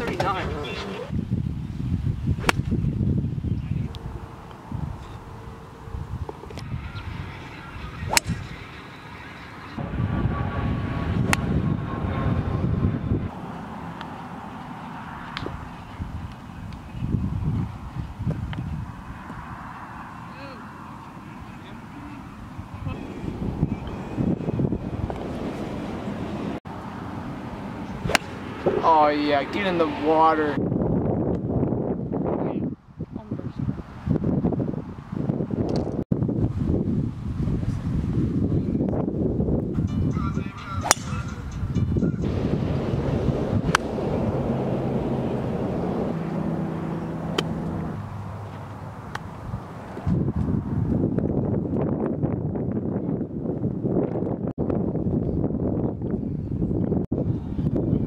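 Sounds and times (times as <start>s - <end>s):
wind buffeting microphone: 0.0s - 58.0s
golf club striking ball: 2.4s - 2.8s, 8.1s - 8.6s, 28.0s - 28.8s, 40.8s - 41.6s, 43.6s - 44.0s, 47.3s - 47.7s.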